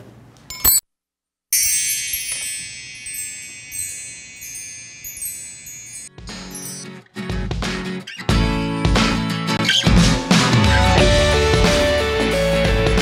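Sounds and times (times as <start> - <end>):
metal bar chimes ringing: 0.5 - 0.9, 1.5 - 6.9.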